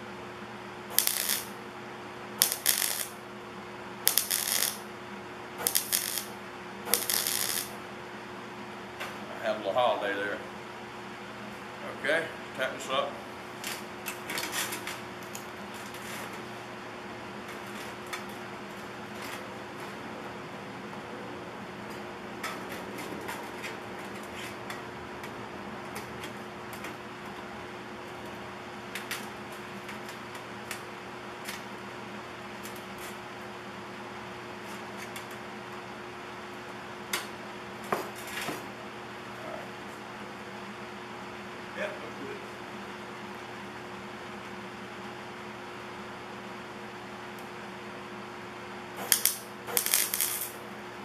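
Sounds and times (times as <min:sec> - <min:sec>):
background hum: 0:00.0 - 0:51.0.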